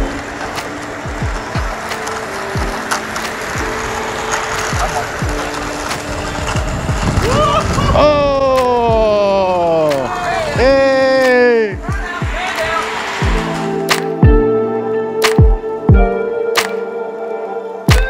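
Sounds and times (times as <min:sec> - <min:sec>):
held synth notes: 0:00.0 - 0:07.2, 0:08.0 - 0:18.0
sliding synth melody: 0:00.0 - 0:08.3, 0:08.9 - 0:18.0.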